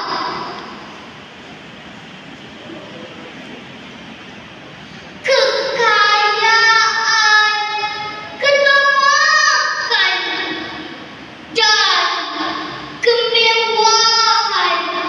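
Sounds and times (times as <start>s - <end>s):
girl reciting poem in sung style: 0.0s - 0.9s, 4.9s - 15.0s
low background noise: 0.0s - 15.0s.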